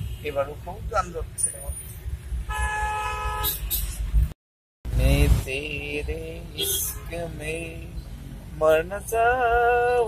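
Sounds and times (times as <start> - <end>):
engine and road noise: 0.0 - 10.0
vehicle horn blaring: 2.5 - 3.8, 6.6 - 7.2.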